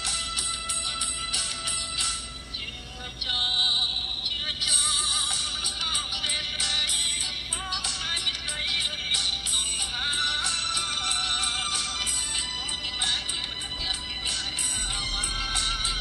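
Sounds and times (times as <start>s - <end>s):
song with singing over percussion: 0.0s - 16.0s.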